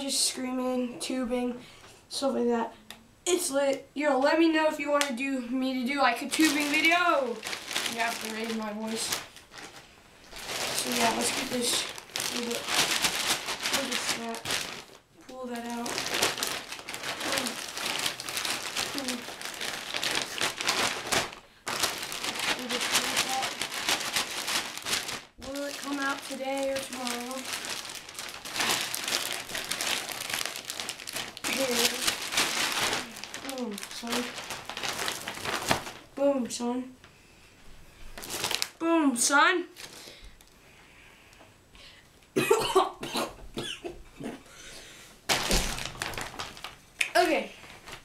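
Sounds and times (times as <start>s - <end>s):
person speaking: 0.0s - 9.3s, 10.6s - 13.0s, 13.6s - 14.6s, 15.2s - 16.4s, 17.0s - 17.7s, 18.7s - 19.4s, 21.7s - 24.4s, 25.4s - 27.8s, 31.3s - 34.5s, 47.0s - 47.6s
plastic bag crinkling: 5.9s - 36.2s, 38.0s - 38.8s, 39.8s - 40.6s, 45.3s - 48.0s
boy coughing: 42.4s - 44.5s.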